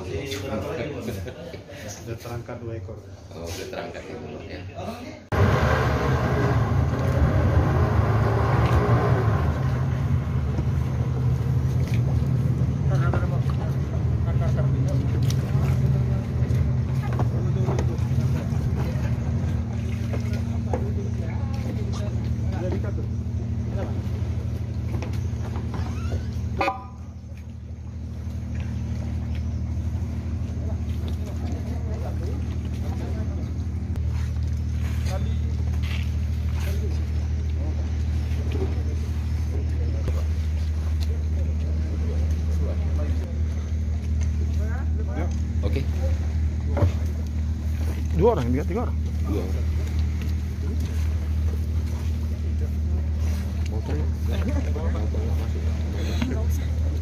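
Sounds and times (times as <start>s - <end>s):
boat engine idling: 5.3s - 57.0s.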